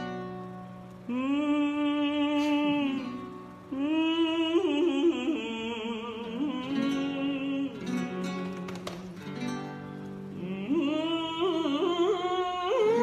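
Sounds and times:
nylon-string acoustic guitar: 0.0s - 13.0s
man singing held notes: 1.1s - 9.2s.

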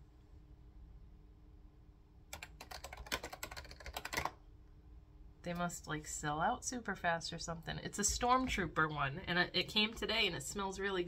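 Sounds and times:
typing on computer keyboard: 2.3s - 4.4s.

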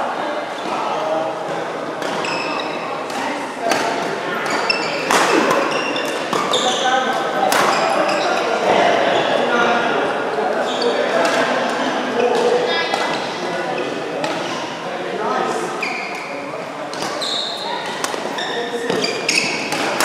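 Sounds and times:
shoes squeaking on floor: 2.0s - 3.3s, 4.2s - 8.6s, 10.6s - 11.2s, 15.7s - 20.0s
rackets hitting shuttlecock: 2.0s - 8.4s, 16.9s - 17.2s, 17.8s - 20.0s.

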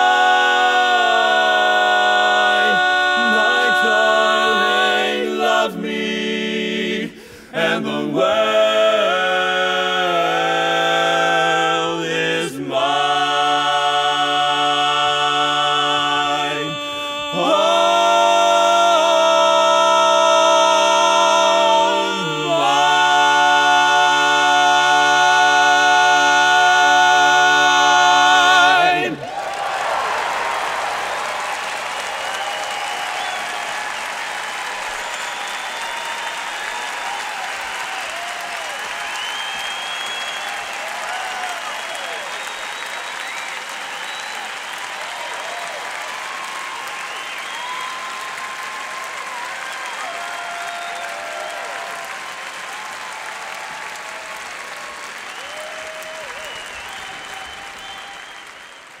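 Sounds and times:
audience applauding: 0.0s - 6.8s, 10.0s - 59.0s
people cheering: 0.0s - 6.8s, 7.6s - 59.0s.

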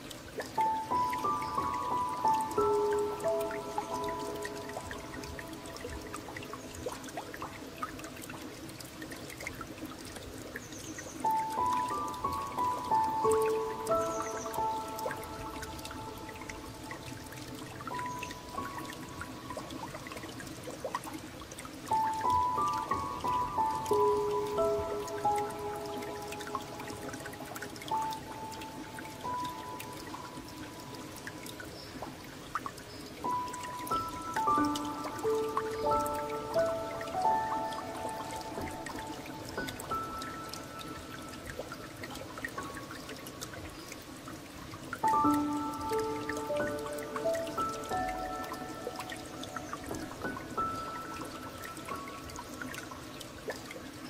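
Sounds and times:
trickle of flowing water: 0.0s - 54.0s.

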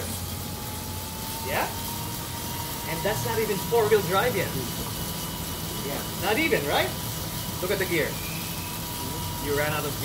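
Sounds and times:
bike wheel humming on trainer: 0.0s - 10.0s.

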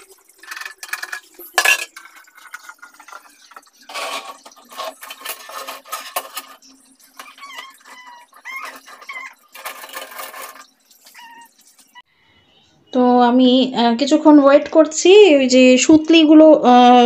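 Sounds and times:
metal stove parts clinking and scraping: 0.1s - 11.5s.

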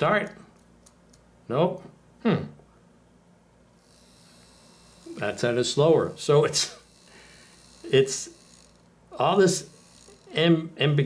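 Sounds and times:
small motor whirring: 3.8s - 11.0s.

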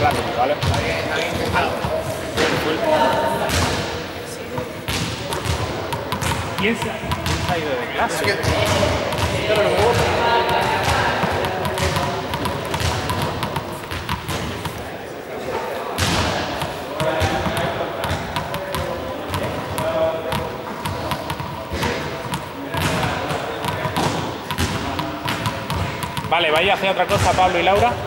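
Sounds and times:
balls thudding on a floor: 0.0s - 14.9s, 16.0s - 28.0s
indistinct voices: 0.0s - 28.0s.

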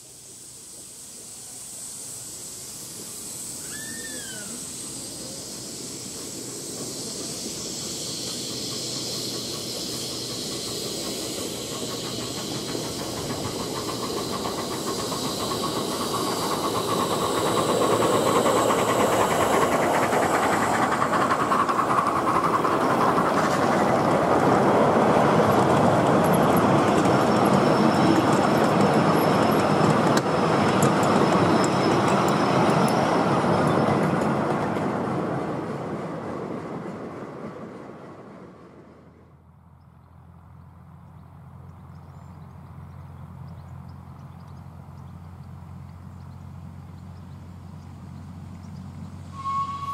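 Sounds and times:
miniature steam locomotive running: 0.0s - 38.9s, 40.8s - 49.9s
coach wheels clattering on track: 4.6s - 39.1s.

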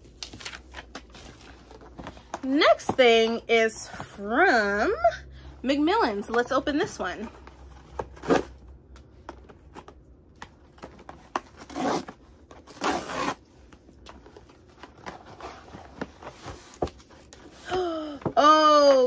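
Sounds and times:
paper rustling: 0.0s - 2.2s.

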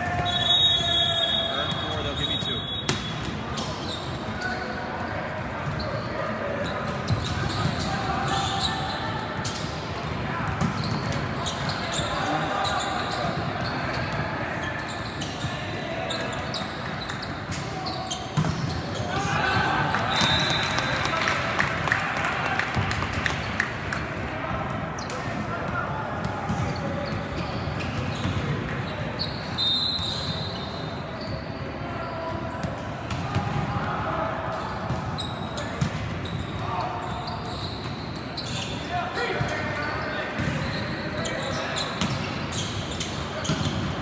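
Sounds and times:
referee's whistle: 0.2s - 3.2s, 20.0s - 21.1s, 29.2s - 32.2s.

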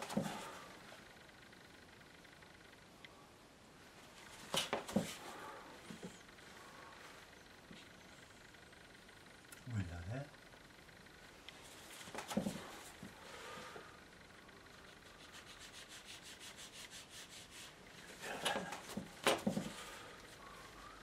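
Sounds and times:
tissue rubbing on paper: 14.8s - 19.0s.

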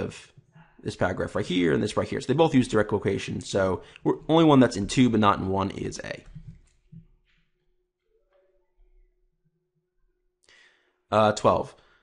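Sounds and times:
faint short breath: 10.4s - 11.0s.

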